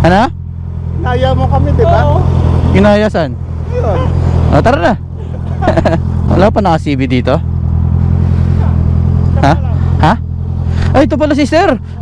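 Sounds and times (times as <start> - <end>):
motorcycle engine idling: 0.0 - 12.0
people talking: 1.0 - 7.4, 8.6 - 10.2, 10.9 - 12.0.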